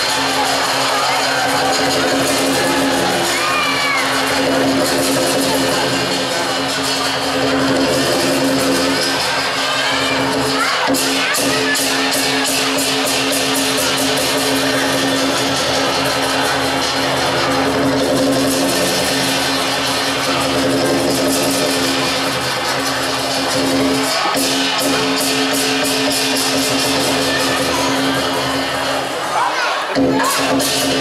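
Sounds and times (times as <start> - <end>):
hand cymbals clashing: 0.0 - 29.3
drum beating: 0.0 - 31.0.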